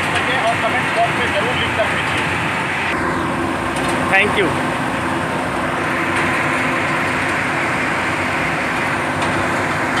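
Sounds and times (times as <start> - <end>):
loud mechanical din: 0.0 - 10.0.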